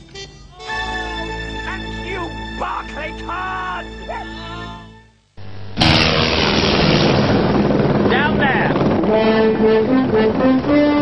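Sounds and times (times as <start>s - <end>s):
helicopter engine and rotor: 6.7s - 10.7s.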